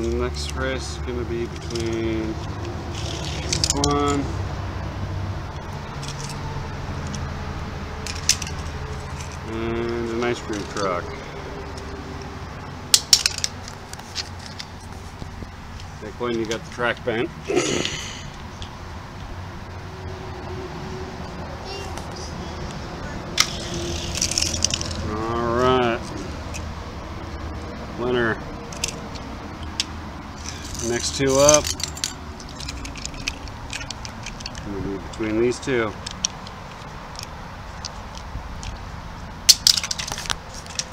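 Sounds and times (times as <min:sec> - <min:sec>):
low hum of traffic: 0:00.0 - 0:40.9
child calling out: 0:21.6 - 0:23.3.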